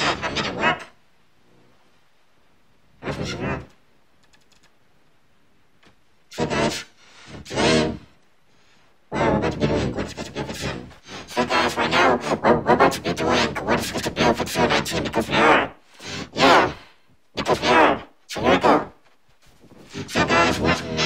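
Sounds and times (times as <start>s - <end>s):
pitch-shifted voice-like sound: 0.0s - 1.0s, 3.0s - 3.8s, 6.3s - 8.2s, 9.1s - 16.8s, 17.4s - 19.0s, 19.9s - 21.0s.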